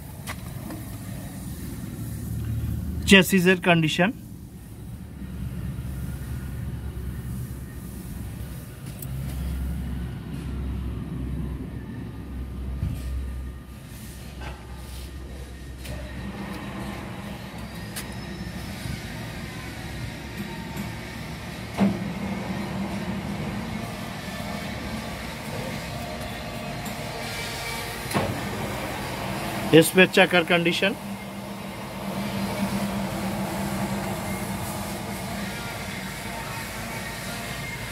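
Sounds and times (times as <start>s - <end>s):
low engine rumble: 0.0s - 37.9s.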